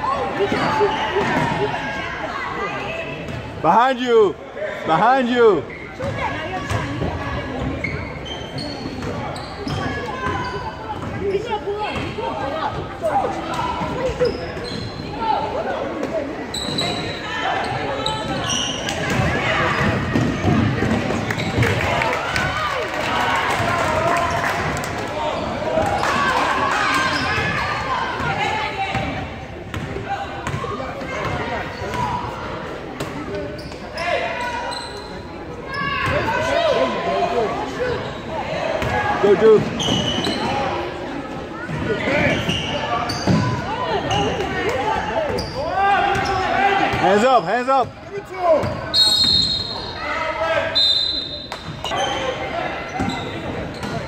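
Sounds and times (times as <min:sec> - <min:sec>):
people talking and calling out: 0:00.0 - 0:54.0.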